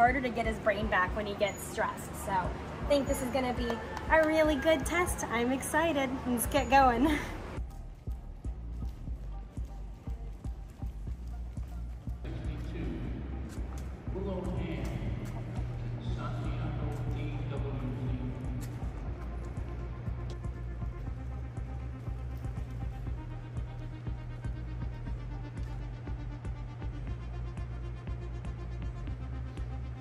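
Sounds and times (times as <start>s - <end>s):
low indoor hum: 0.0s - 30.0s
music: 0.0s - 30.0s.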